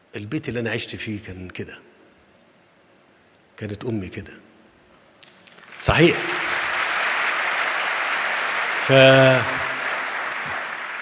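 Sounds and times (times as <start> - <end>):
audience applauding: 5.5 - 11.0
man speaking: 5.8 - 6.3, 8.8 - 9.7.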